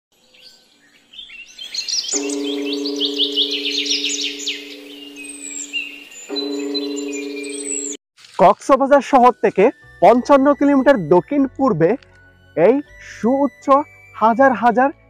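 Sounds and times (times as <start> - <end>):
birds chirping: 0.2 - 8.0
held low chord: 2.2 - 8.0.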